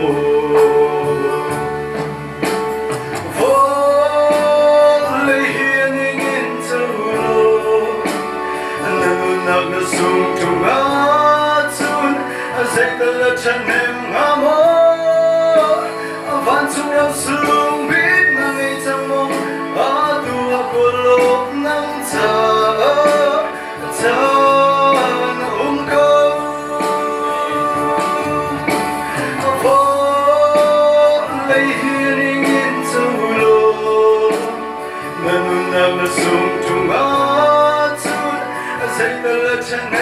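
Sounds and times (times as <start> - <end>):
man singing into microphone: 0.0 - 2.7, 3.3 - 40.0
instrumental accompaniment: 0.0 - 40.0.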